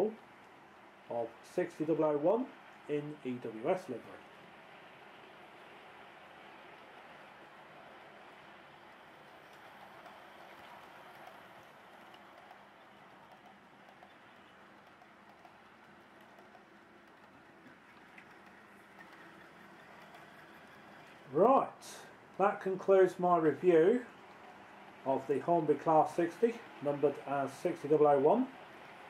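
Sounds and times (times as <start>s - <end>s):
model train running on rails: 0.0s - 29.0s.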